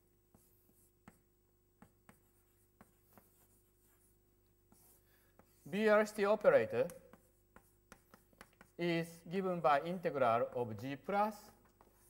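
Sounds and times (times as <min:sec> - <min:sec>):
chalk tapping and scratching: 0:00.0 - 0:09.6, 0:10.8 - 0:12.0.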